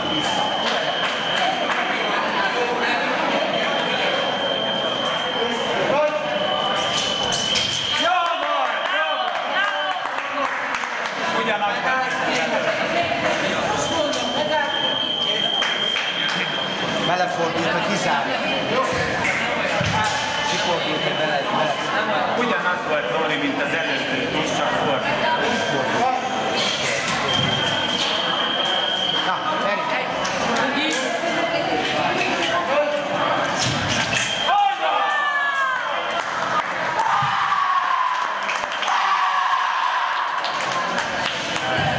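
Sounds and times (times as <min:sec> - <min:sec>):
hall chatter: 0:00.0 - 0:41.9.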